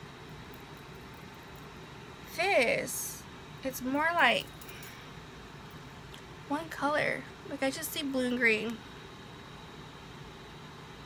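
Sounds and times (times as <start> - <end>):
background hiss and hum: 0.0 - 11.0.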